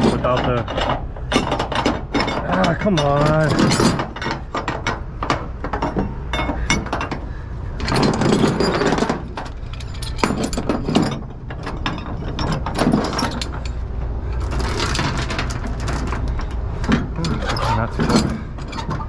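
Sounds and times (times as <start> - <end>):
steel chain rattling and clanking: 0.0 - 19.0.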